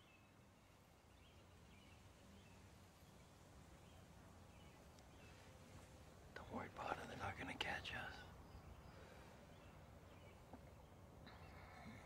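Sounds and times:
faint outdoor background: 0.0s - 12.0s
man whispering: 6.3s - 8.4s.

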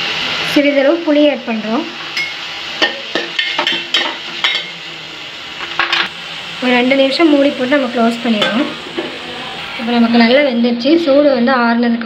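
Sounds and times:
vegetables sizzling in oil: 0.0s - 11.9s.

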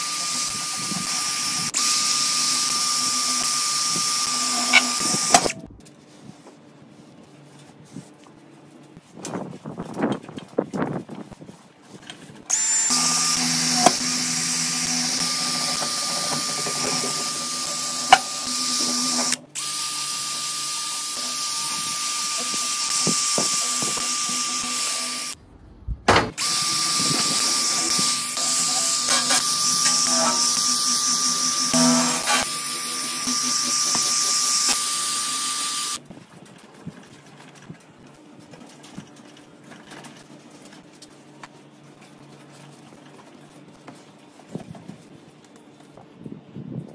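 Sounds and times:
drill motor whine with scrubbing: 0.0s - 5.6s, 12.5s - 25.4s, 26.4s - 36.0s.

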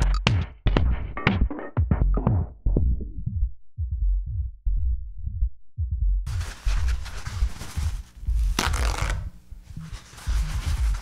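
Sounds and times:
deep low thumps: 0.2s - 8.6s
paper towel rustling: 6.3s - 11.0s.

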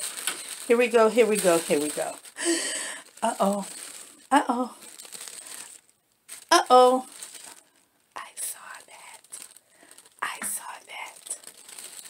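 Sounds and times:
tissue paper rustling: 0.0s - 12.0s.

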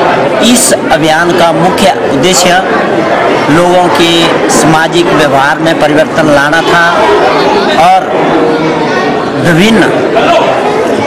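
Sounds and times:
man speaking: 0.4s - 2.7s, 3.4s - 8.3s, 9.4s - 10.5s.

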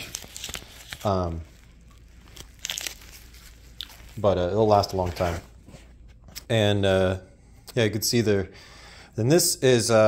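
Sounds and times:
wrapper crinkling: 0.0s - 5.6s.

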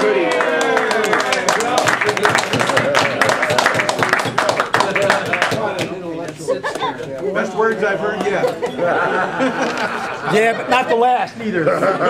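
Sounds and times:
people talking indistinctly: 0.5s - 12.0s.

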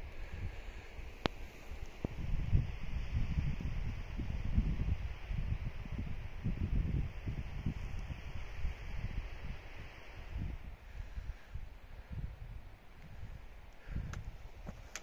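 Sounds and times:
faint steady hiss: 0.0s - 15.0s
wind buffeting microphone: 0.0s - 15.0s.

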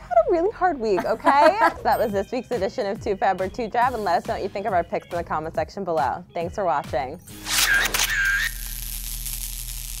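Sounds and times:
whistle-like tone: 7.5s - 8.8s.

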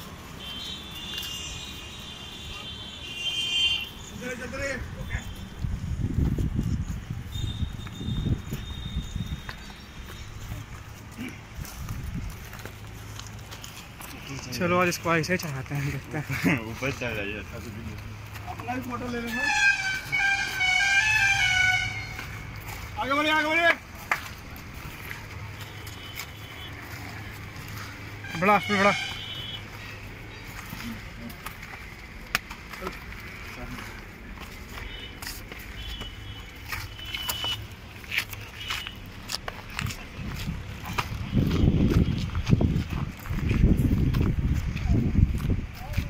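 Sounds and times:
vehicle horn honking: 0.4s - 4.0s, 7.3s - 9.5s, 19.2s - 22.4s, 25.6s - 27.0s, 28.2s - 30.6s, 34.8s - 37.7s, 38.4s - 39.1s
footsteps over rock: 29.6s - 46.0s.

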